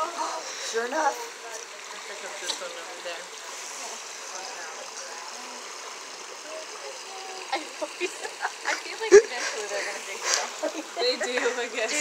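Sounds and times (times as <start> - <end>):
faint voices: 0.0 - 12.0
running water rushing: 0.0 - 12.0.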